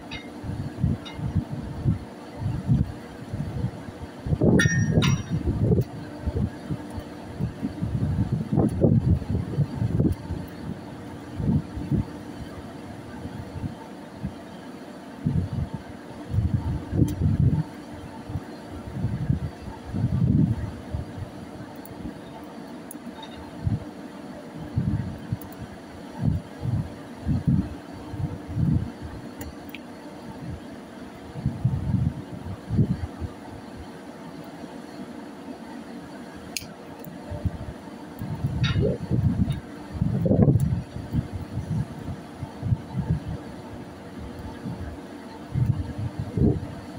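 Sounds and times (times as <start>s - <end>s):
low rumbling gusts: 0.0s - 14.3s, 15.2s - 17.6s, 31.3s - 33.3s, 37.4s - 43.4s.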